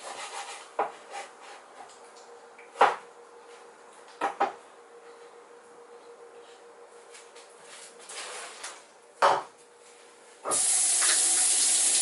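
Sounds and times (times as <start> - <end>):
rubbing scrape: 0.0 - 1.6.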